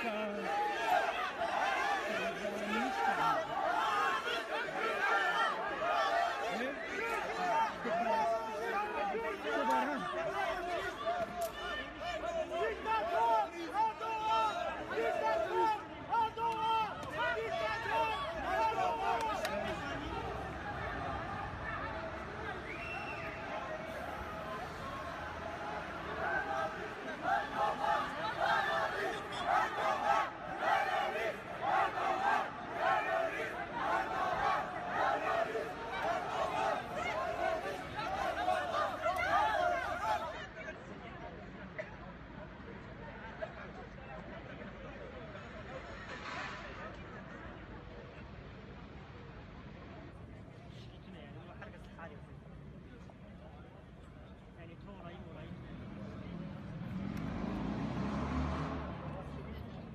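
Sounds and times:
crowd chanting a slogan: 0:00.0 - 0:40.8
car driving by: 0:55.8 - 0:59.9.

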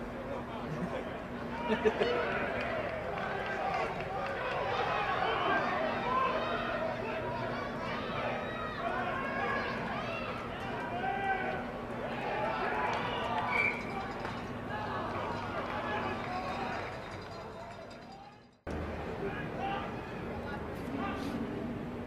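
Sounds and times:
crowd of voices shouting: 0:01.7 - 0:16.9.

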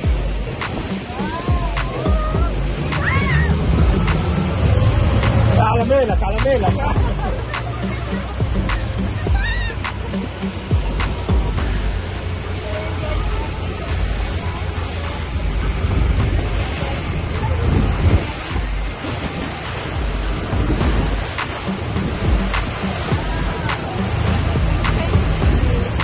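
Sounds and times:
water rushing against boat hull: 0:00.0 - 0:26.0
wind buffeting microphone: 0:00.0 - 0:26.0.

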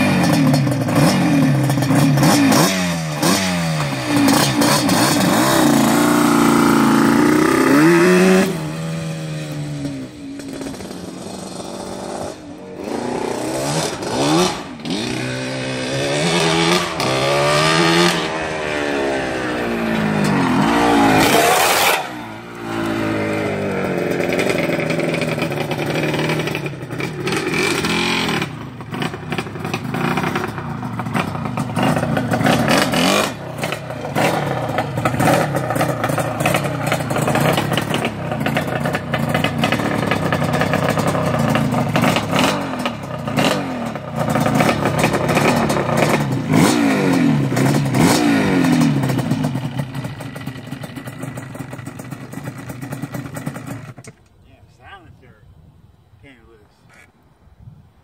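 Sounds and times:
two-stroke engine revving: 0:00.0 - 0:54.0.

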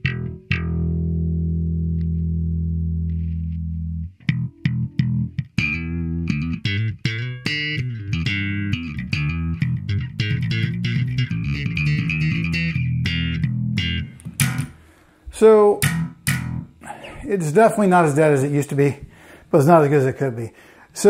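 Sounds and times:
electric bass plucked notes: 0:00.0 - 0:17.8.

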